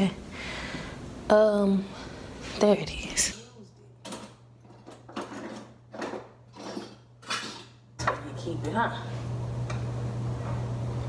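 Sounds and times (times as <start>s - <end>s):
kitchen utensils clinking and rattling: 4.0s - 8.2s.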